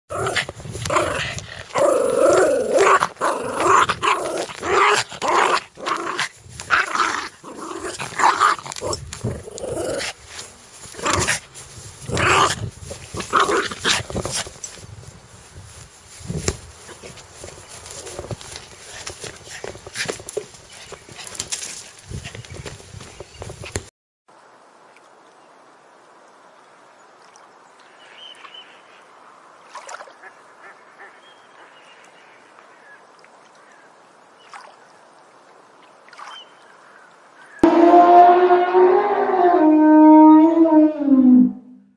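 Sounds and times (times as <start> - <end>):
small dog growling: 0.1 - 10.2.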